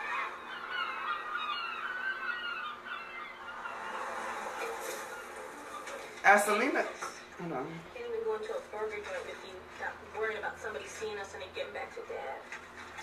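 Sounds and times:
flock of birds squawking: 0.0 - 6.2.

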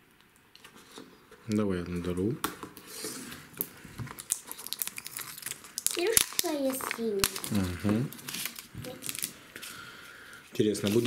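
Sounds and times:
wrapping crinkling and tearing: 2.8 - 11.0.

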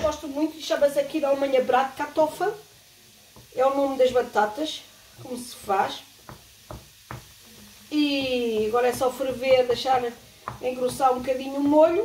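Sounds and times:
wooden spoon knocking frying pan: 3.3 - 4.5, 5.1 - 7.4, 8.1 - 12.0.

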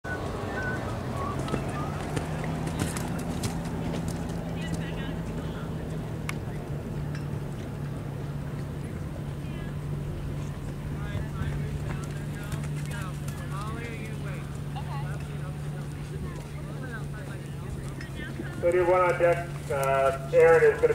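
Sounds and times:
low engine hum: 0.0 - 20.9
indistinct voices: 0.1 - 20.9
horse hoofbeats on sand: 1.3 - 6.0, 10.3 - 16.6.

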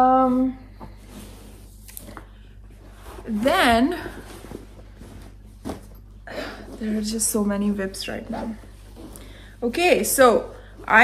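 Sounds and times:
cloth bag rustling: 2.8 - 7.7.

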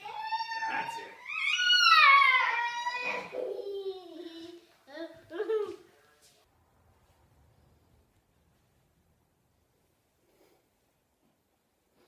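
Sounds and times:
young child crying out: 0.0 - 3.7.

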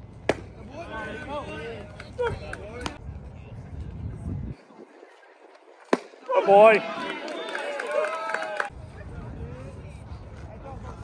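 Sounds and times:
baseball popping into a mitt: 0.2 - 0.5.

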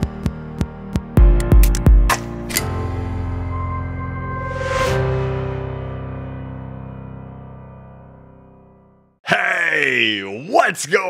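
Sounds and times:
ambient music: 0.0 - 9.1
man speaking drawn-out sound: 9.2 - 11.0.

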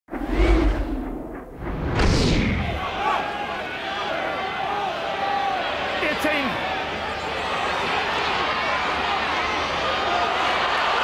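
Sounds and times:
whoosh: 0.1 - 2.9
deep boom: 0.1 - 3.0
crowd hubbub: 2.6 - 11.0.

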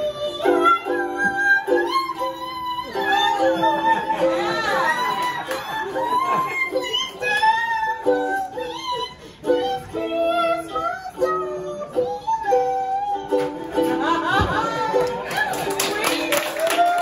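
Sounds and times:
ukulele strummed chords: 0.0 - 17.0
woman singing: 0.0 - 17.0.

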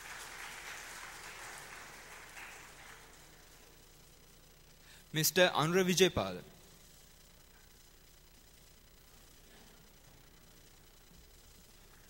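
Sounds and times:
faint audience applause: 0.0 - 3.8.

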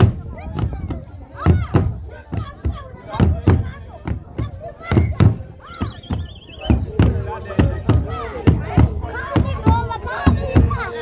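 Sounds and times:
voices calling and chanting: 0.0 - 11.0.

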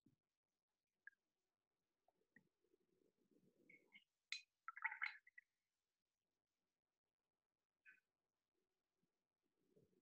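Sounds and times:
water swishing: 3.4 - 5.5.

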